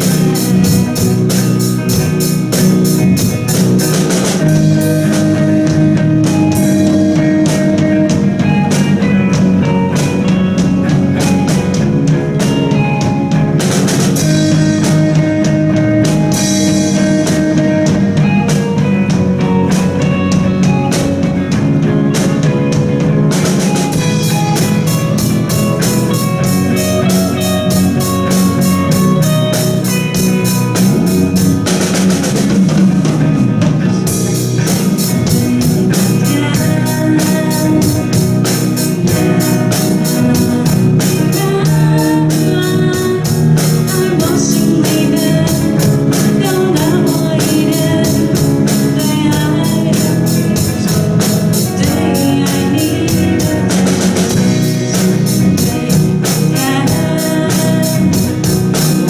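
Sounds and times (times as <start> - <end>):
drumming: 0.0 - 59.0
electric bass: 0.0 - 59.0
electric guitars: 0.0 - 59.0.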